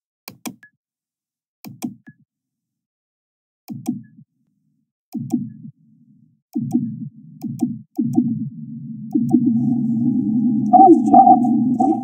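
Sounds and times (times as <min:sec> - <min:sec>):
low buzzing tone: 0:08.9 - 0:12.0
sharp electronic clicks: 0:10.6 - 0:12.0.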